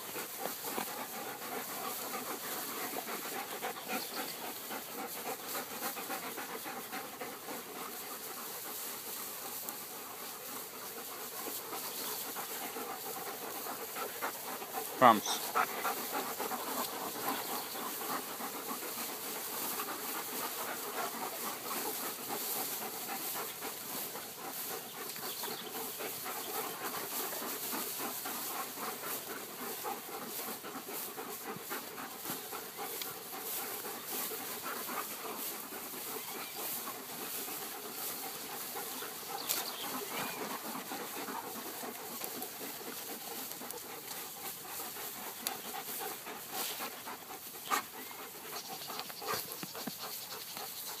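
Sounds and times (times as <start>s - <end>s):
dogs panting: 0.0s - 51.0s.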